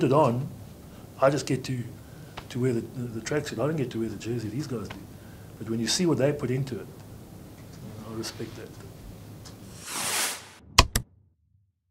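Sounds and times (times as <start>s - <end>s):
whoosh of noise: 9.6s - 10.8s.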